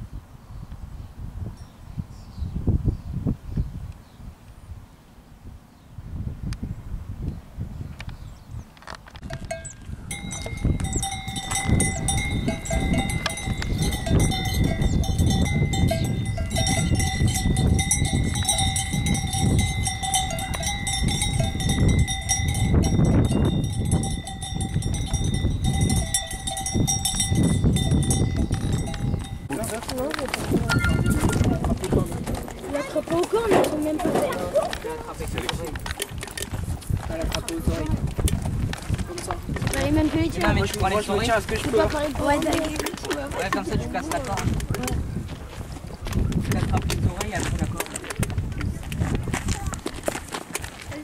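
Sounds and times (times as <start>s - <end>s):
cattle bells clanking: 9.2s - 38.5s.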